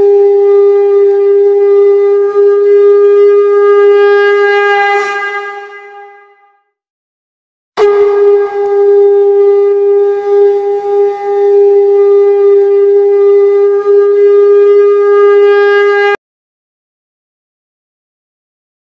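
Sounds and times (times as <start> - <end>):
conch shell blown: 0.0 - 6.8, 7.8 - 16.2.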